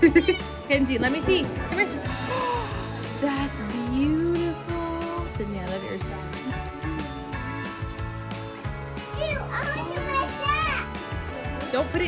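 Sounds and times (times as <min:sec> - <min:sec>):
background music: 0:00.0 - 0:12.0
young children chattering and squealing: 0:09.1 - 0:11.0.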